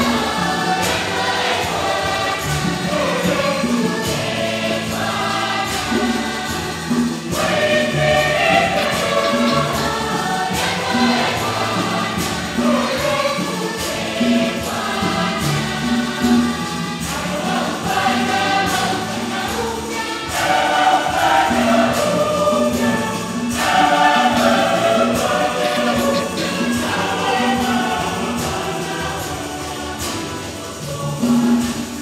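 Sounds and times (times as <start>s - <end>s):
congregation and choir singing hymn: 0.0s - 32.0s
steady drum beat: 0.0s - 32.0s.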